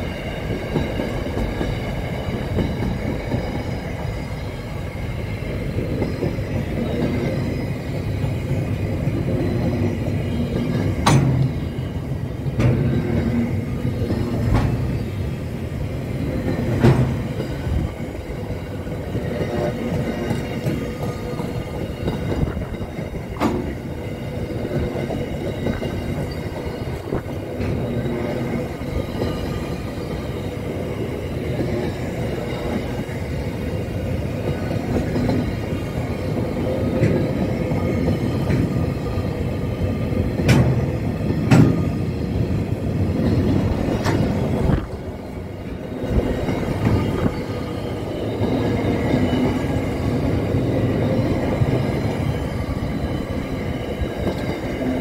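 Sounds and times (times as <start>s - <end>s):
train wheels rumbling on rails: 0.0s - 55.0s
sharp rail clacks: 10.7s - 11.6s, 19.4s - 23.9s, 40.4s - 41.9s, 43.8s - 45.0s.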